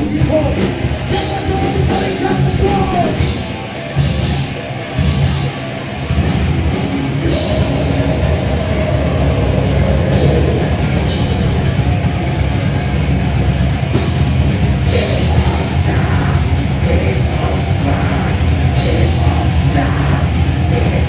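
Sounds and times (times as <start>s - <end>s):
distorted guitar and bass: 0.0s - 21.0s
pounding drums: 5.2s - 21.0s.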